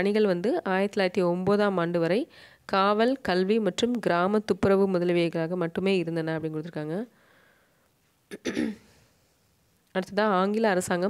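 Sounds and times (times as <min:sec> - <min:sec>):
person clearing throat: 0:08.3 - 0:09.0.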